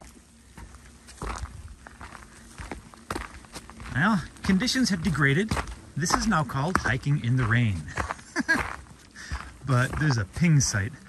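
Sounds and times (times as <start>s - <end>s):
footsteps on wet gravel: 0.0s - 11.0s.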